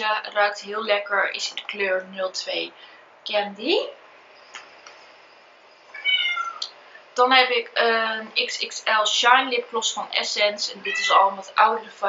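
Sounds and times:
cat meowing: 5.9 - 6.6, 10.8 - 11.3.

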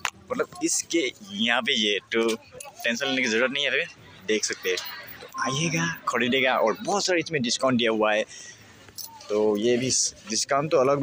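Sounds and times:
man speaking: 0.2 - 8.4, 9.2 - 11.0.

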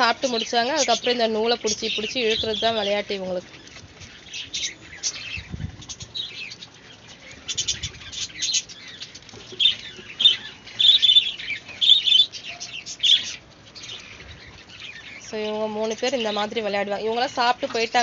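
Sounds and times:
small birds chirping: 0.0 - 18.0.

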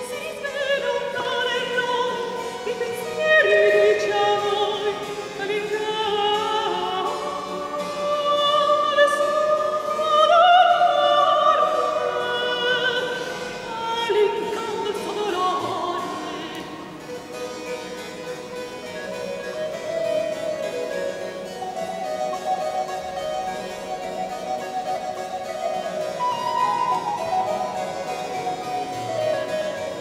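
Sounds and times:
harpsichord: 0.0 - 30.0
high melody in held notes: 16.5 - 30.0.

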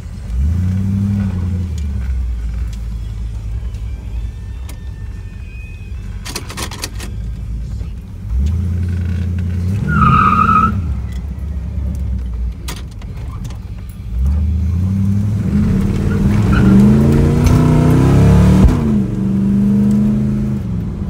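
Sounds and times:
car engine accelerating: 0.0 - 21.0
click: 19.8 - 20.0.

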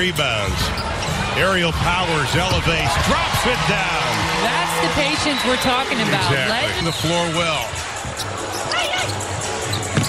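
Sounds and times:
arena crowd noise: 0.0 - 10.0
music over arena sound system: 0.0 - 10.0.

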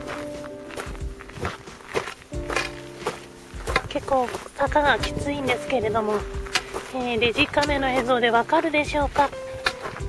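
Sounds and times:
background music: 0.0 - 10.0
footsteps on loose gravel: 0.0 - 10.0.

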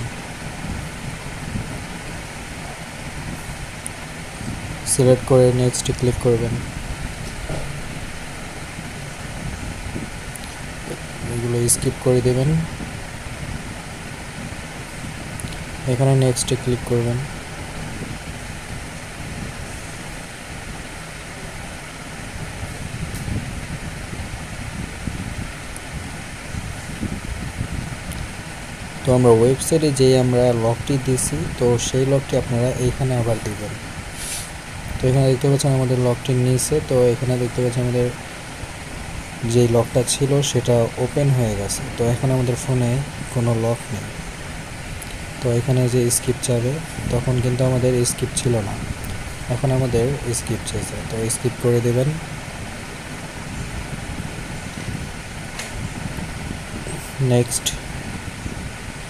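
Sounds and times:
even hiss: 0.0 - 59.0.

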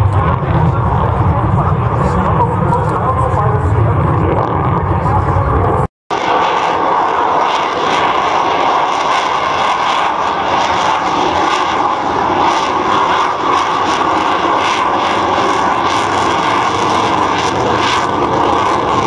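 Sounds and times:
loud jet noise overhead: 0.0 - 19.0.

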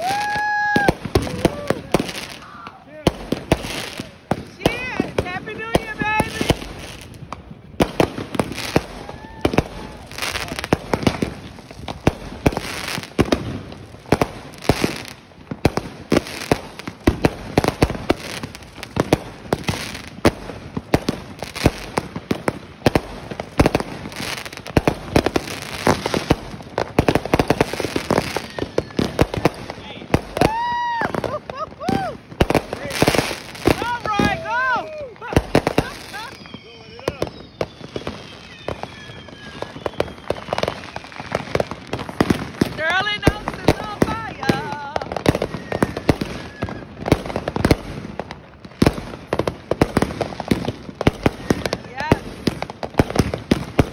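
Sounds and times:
fireworks bangs and crackling: 0.0 - 53.9
whistling fireworks: 0.0 - 53.9.

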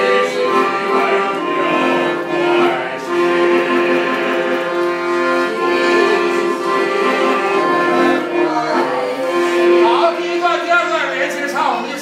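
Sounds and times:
accordion playing chords: 0.0 - 12.0.

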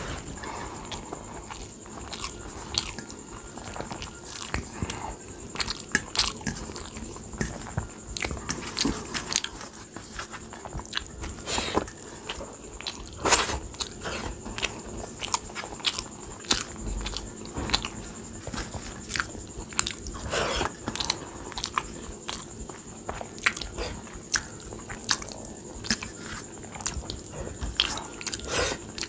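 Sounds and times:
person chewing with mouth smacks: 0.8 - 29.0.

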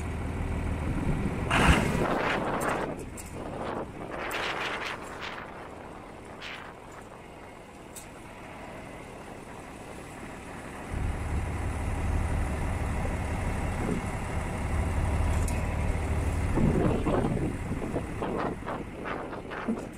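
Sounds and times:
tractor diesel engine running: 0.0 - 19.9
deep low rumble: 10.9 - 19.9.

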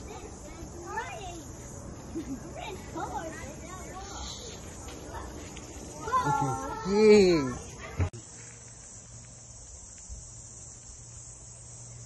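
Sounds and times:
high insect chorus: 0.0 - 12.0.

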